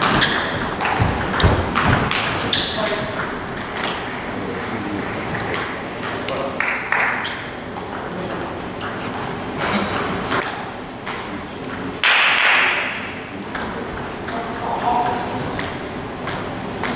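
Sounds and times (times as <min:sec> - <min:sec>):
table tennis ball hits: 0:00.0 - 0:04.1, 0:09.6 - 0:16.9.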